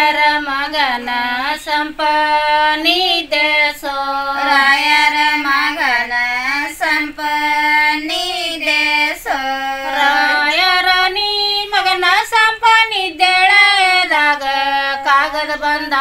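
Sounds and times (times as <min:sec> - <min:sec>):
women singing unaccompanied: 0:00.0 - 0:16.0.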